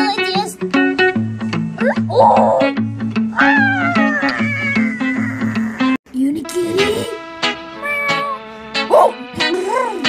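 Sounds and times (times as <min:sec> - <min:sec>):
guitar music: 0:00.0 - 0:10.0
cat meowing: 0:01.8 - 0:06.0.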